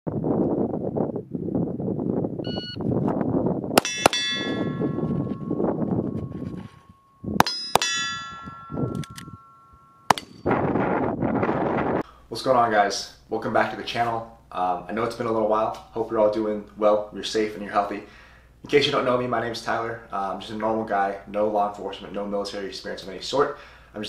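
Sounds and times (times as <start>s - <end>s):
steel target ringing: 3.8s - 10.5s
handgun shots: 10.1s - 10.4s.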